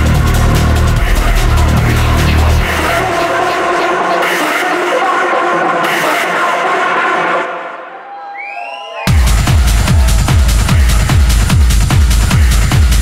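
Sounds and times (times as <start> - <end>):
kick drum and bass: 0.0 - 3.0, 9.1 - 13.0
techno synth chords: 0.0 - 7.8, 9.1 - 13.0.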